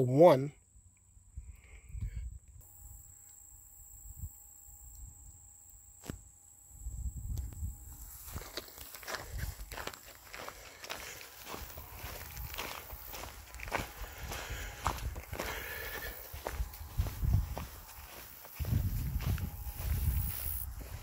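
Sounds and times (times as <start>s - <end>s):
footsteps crunching on gravel: 7.9s - 21.0s
quiet footfalls: 7.9s - 21.0s.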